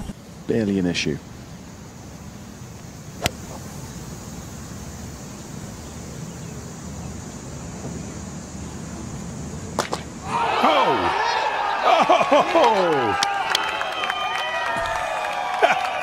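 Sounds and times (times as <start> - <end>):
golf club hitting ball: 3.2 - 3.6, 9.8 - 10.1
crowd cheering and shouting: 10.2 - 16.0.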